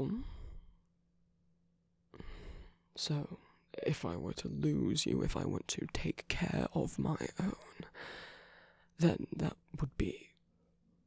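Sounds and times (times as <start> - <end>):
man breathing softly: 0.1 - 0.9, 2.1 - 3.7, 7.8 - 8.9.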